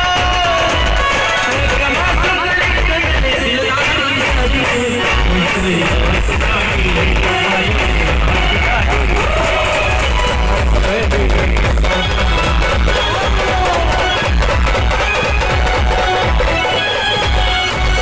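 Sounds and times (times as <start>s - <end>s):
loud music with pulsing bass beat: 0.0s - 18.0s.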